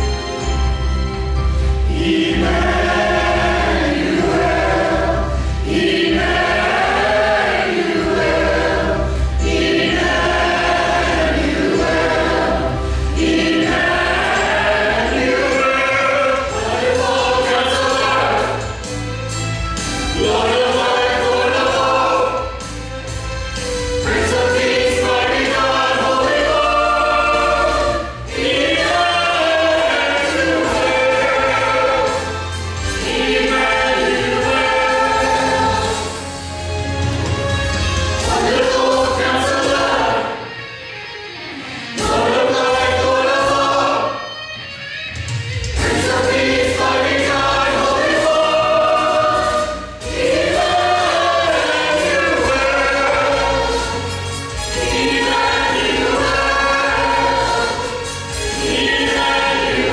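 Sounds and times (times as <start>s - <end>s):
church choir singing: 0.0s - 44.4s, 45.7s - 59.9s
instrumental accompaniment bass line: 0.0s - 59.9s.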